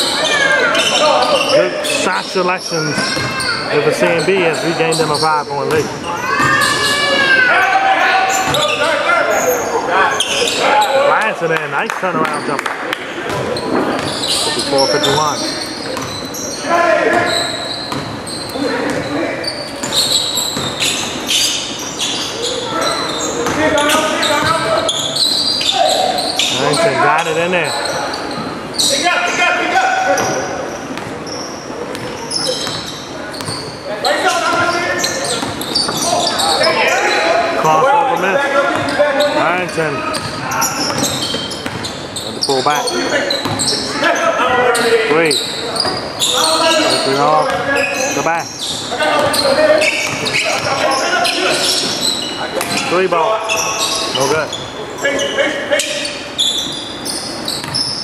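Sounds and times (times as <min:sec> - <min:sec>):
players calling out: 0:00.0 - 0:58.0
basketball bouncing on hardwood: 0:20.6 - 0:20.8.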